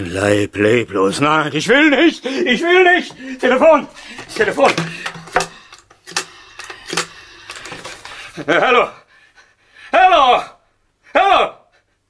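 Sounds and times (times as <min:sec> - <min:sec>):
telephone clicks and knocks: 0:04.2 - 0:08.1.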